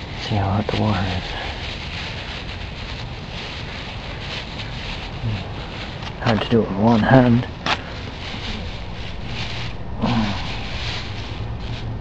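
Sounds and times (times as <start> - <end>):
plastic bag rustling: 0.0 - 12.0
steady low hum: 0.0 - 12.0.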